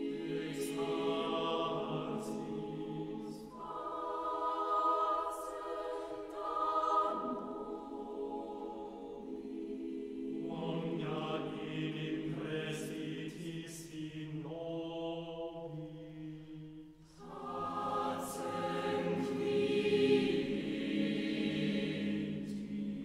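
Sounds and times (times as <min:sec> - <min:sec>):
choir singing unaccompanied: 0:00.0 - 0:23.0.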